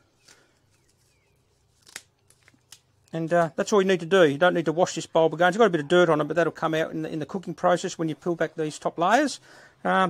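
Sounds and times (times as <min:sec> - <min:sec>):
scissors snipping dry roots: 0:01.8 - 0:03.5.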